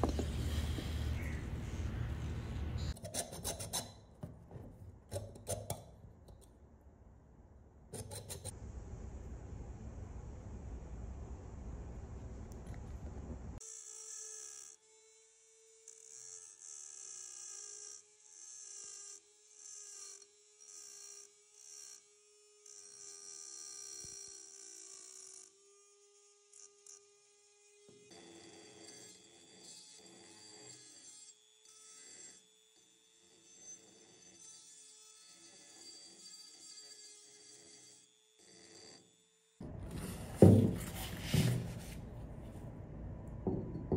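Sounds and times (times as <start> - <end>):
coarse scraping: 0.0 - 4.0, 39.7 - 42.2
rotary tool motor whining: 13.6 - 39.6.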